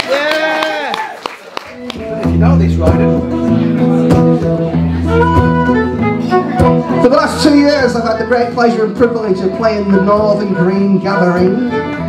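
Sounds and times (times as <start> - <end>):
acoustic guitar: 1.7 - 12.0
fiddle playing held notes: 2.0 - 12.0.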